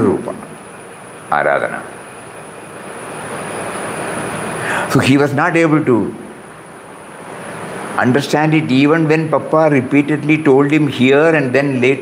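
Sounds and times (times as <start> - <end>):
faint high whine: 0.0 - 12.0
steady rushing noise: 0.0 - 12.0.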